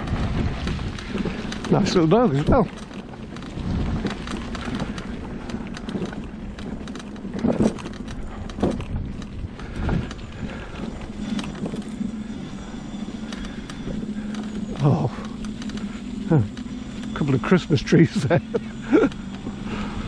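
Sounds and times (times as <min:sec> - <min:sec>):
electric scooter motor hum: 0:00.0 - 0:20.0
tyres crackling over dry leaves: 0:00.0 - 0:20.0.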